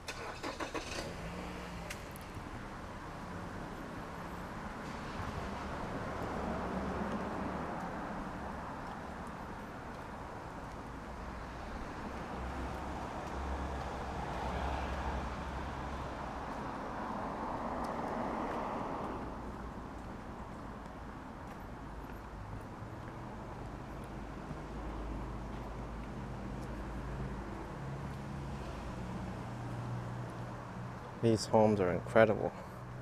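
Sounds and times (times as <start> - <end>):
vehicle passing: 0.1 - 33.0.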